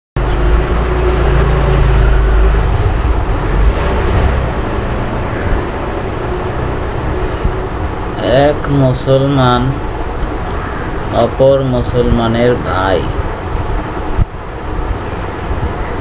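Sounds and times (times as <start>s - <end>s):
low rumble and hiss: 0.2s - 16.0s.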